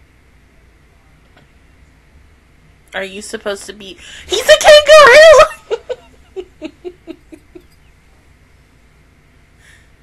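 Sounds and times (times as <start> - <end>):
woman laughing: 4.4 - 7.8.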